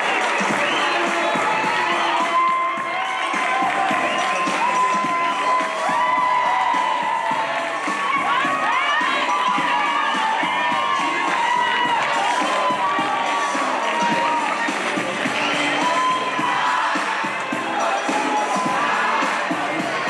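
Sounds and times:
crowd cheering and shouting: 0.0s - 20.0s.

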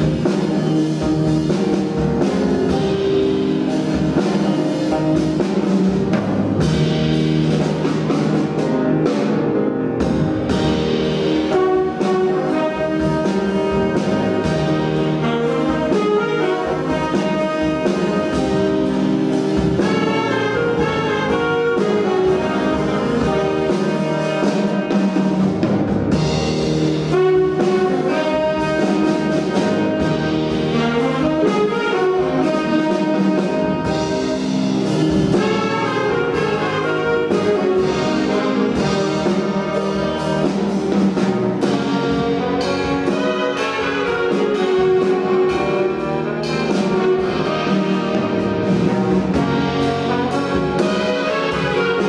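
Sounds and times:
jazz big band playing: 0.0s - 52.0s.

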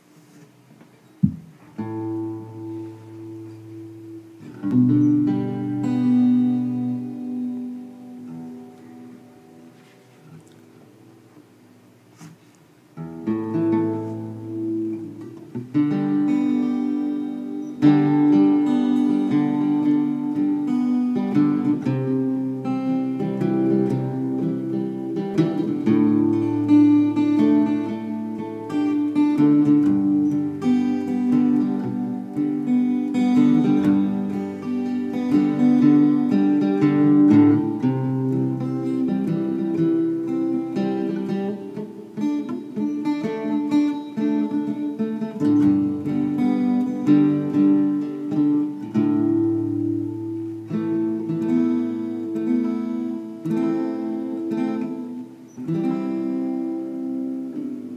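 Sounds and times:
acoustic guitar strumming chords: 0.0s - 57.9s.

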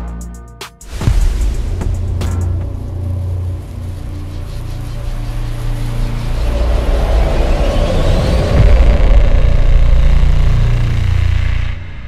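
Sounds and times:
fiery blast: 0.8s - 12.0s
rising sweep: 0.8s - 12.0s
deep bass rumble: 0.9s - 12.0s.

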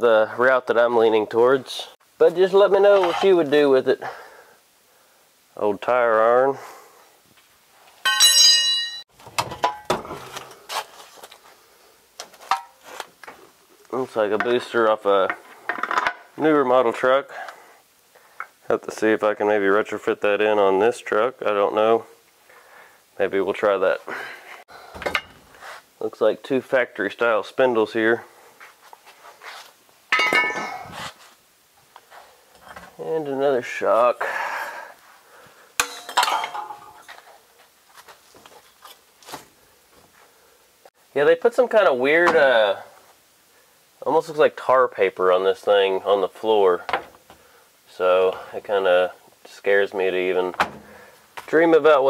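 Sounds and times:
tire iron ringing on metal: 8.1s - 9.0s, 35.8s - 37.0s
metal parts clanking: 8.1s - 10.3s, 30.1s - 31.0s, 35.8s - 37.1s.

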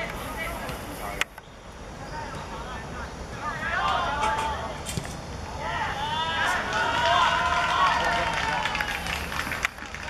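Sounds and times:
voices shouting and cheering: 2.0s - 4.8s, 5.5s - 10.0s.

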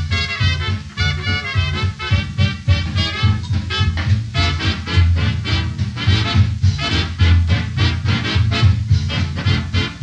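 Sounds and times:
swing band music: 0.0s - 10.0s.

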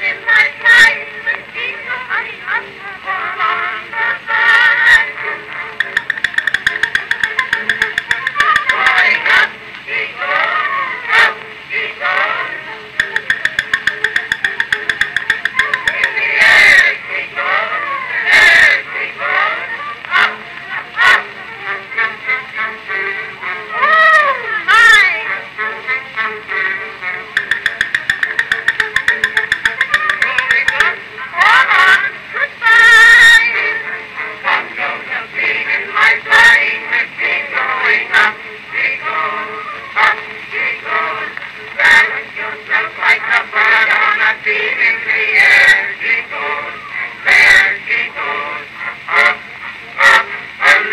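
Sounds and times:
old recording of comic song duet: 0.0s - 50.9s.

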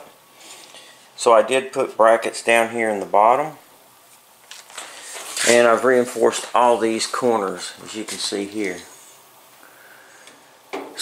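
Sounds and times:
faint steady hiss: 0.0s - 11.0s
man speaking: 1.2s - 3.7s, 5.4s - 9.0s.

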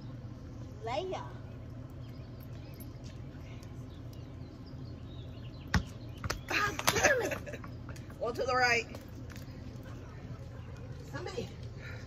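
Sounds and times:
low outdoor hum: 0.0s - 12.0s.

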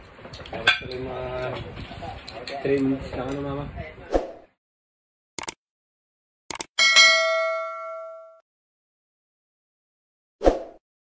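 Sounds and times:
cursor click: 5.4s - 5.6s, 6.5s - 6.7s
bell chime ding: 6.8s - 8.4s.

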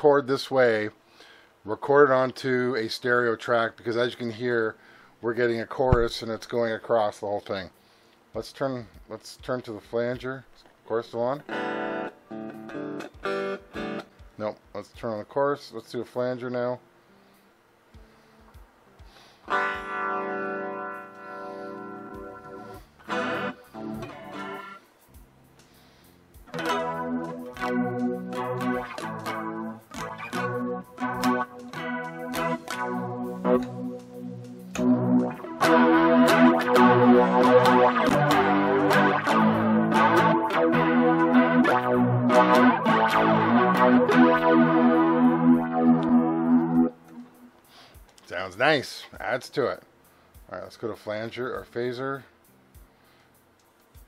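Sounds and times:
electric guitar chords with flanger: 11.4s - 14.3s, 19.5s - 25.4s, 26.4s - 47.6s.

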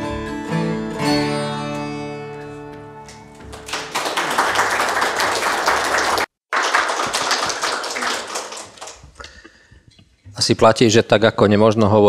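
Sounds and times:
audience applauding: 3.3s - 9.3s.

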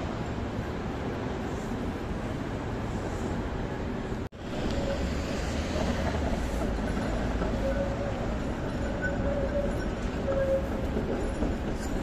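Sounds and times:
tram rumbling on rails: 0.0s - 12.0s.

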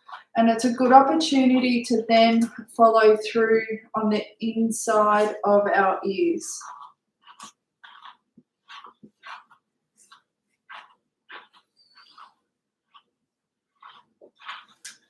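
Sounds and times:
brush scratching through hair: 0.0s - 0.3s, 5.0s - 13.1s, 13.7s - 15.0s.

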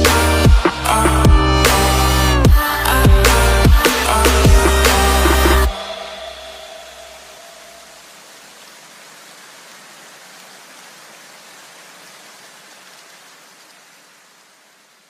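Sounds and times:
low bass hum: 0.0s - 7.8s.

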